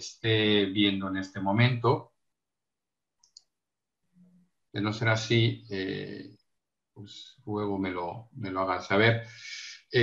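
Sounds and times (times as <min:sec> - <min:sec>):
faint mouse clicks: 0:03.2 - 0:03.5.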